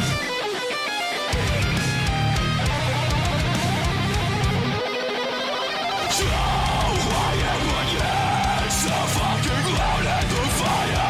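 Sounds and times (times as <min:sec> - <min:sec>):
heavy bass and drums: 0:00.0 - 0:00.2, 0:01.4 - 0:04.8, 0:06.1 - 0:11.0
fast electric guitar riffing: 0:00.0 - 0:11.0.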